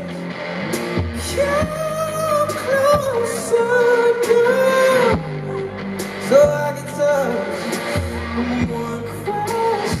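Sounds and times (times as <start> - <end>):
live band playing: 0.0 - 10.0
man singing long sliding notes: 1.2 - 10.0.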